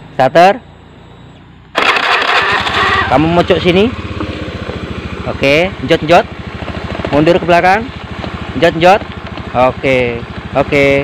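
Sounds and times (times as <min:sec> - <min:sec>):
scooter engine starting and running: 0:00.0 - 0:11.0.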